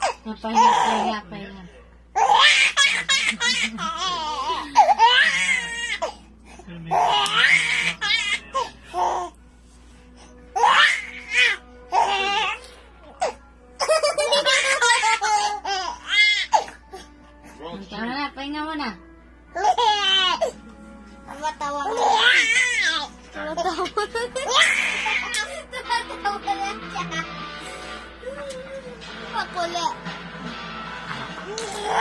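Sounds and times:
background music: 0:00.0 - 0:32.0
baby laughing: 0:02.2 - 0:06.1, 0:13.8 - 0:16.8, 0:21.8 - 0:27.4.

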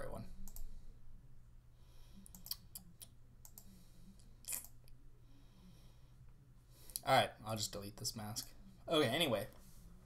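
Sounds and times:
low steady hum: 0:00.0 - 0:10.0
computer mouse clicks: 0:00.4 - 0:00.7, 0:02.2 - 0:03.7.

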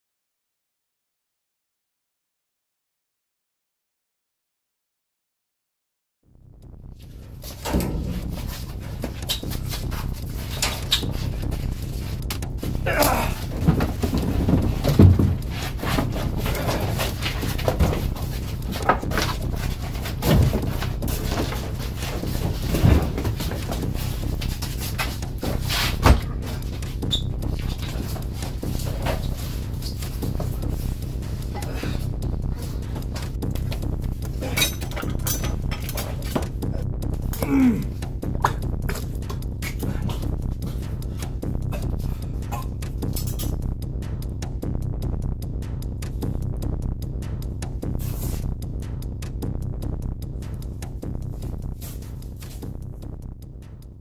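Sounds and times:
steady low drone: 0:06.2 - 0:54.0
heavy breathing and grunting: 0:12.6 - 0:18.2, 0:30.4 - 0:33.2, 0:36.6 - 0:38.7, 0:39.8 - 0:42.7
scattered knocks: 0:13.4 - 0:30.8.

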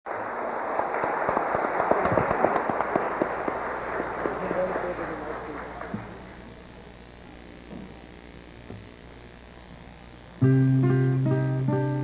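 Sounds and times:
audience applauding: 0:00.1 - 0:06.7.

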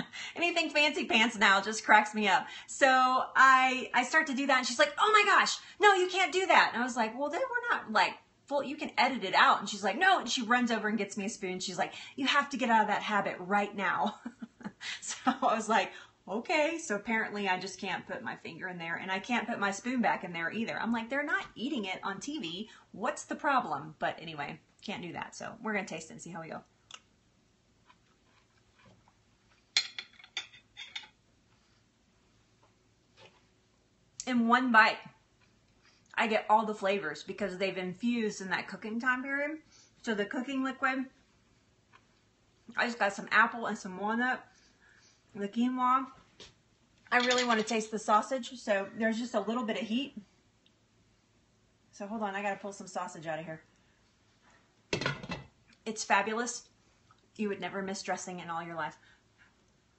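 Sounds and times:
metal spoon scraping a pot: 0:29.8 - 0:31.2.

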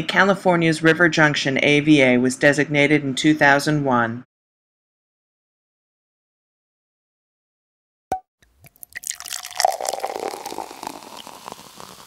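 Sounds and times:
cork pop: 0:08.1 - 0:12.0
liquid dripping: 0:08.4 - 0:12.0
liquid pouring from a bottle: 0:08.4 - 0:12.0.

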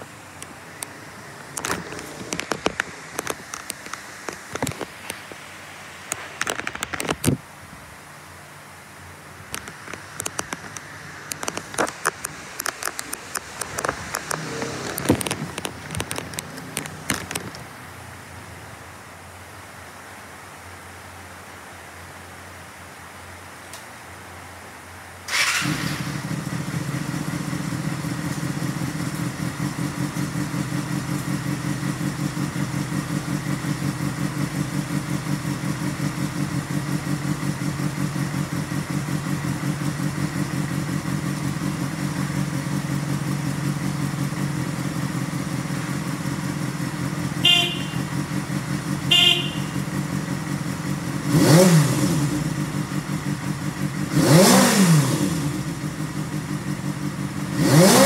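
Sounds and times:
motorcycle engine starting and idling: 0:00.0 - 0:05.3, 0:09.2 - 0:18.6, 0:25.2 - 0:58.0
short horn beeps: 0:47.4 - 0:48.2, 0:49.1 - 0:49.8.

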